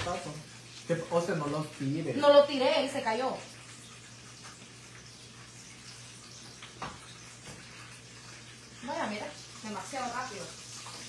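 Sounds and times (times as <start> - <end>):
food sizzling in hot oil: 0.0 - 11.0.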